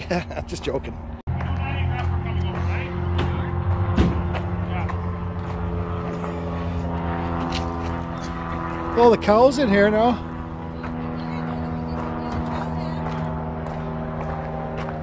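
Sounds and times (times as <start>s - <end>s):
engine running steadily: 0.0s - 15.0s.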